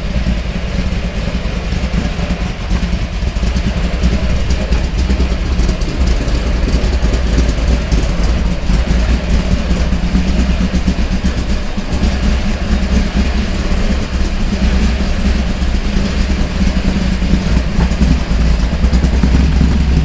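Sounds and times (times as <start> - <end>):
car engine idling: 0.0 - 20.0.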